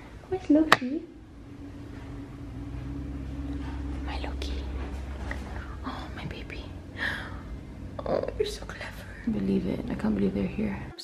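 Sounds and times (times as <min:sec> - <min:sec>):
low steady hum: 0:00.0 - 0:11.0
woman whispering: 0:05.6 - 0:06.7.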